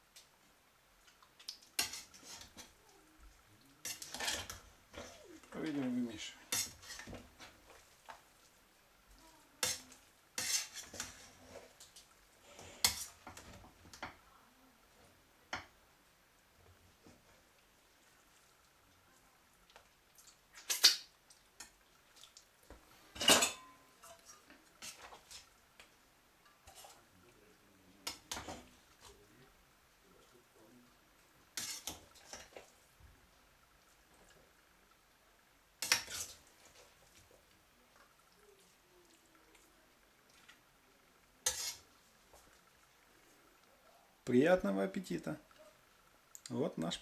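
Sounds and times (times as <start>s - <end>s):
metal skimmer clanking on steel pot: 23.2s - 23.8s.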